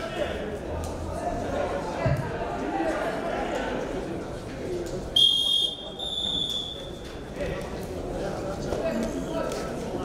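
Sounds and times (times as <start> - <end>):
referee's whistle blasts: 5.2 - 6.9.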